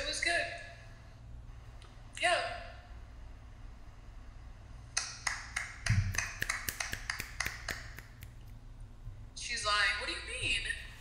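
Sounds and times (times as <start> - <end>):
steady low hum: 0.0 - 11.0
sharp taps or clicks: 5.0 - 8.4.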